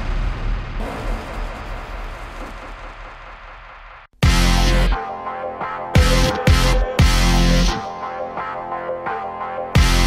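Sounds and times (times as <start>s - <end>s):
cinematic impact rumble: 0.0s - 4.1s.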